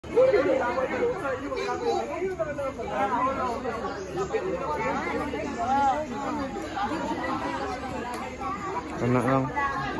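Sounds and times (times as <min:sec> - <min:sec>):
people chattering: 0:00.0 - 0:09.9.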